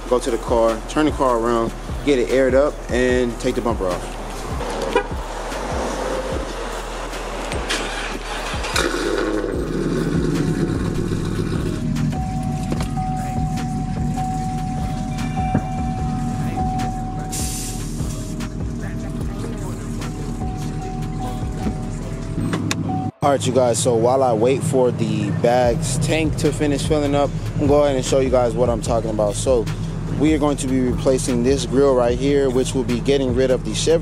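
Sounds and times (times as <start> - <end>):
background music: 0.0 - 34.0
car engine starting and idling: 0.0 - 34.0.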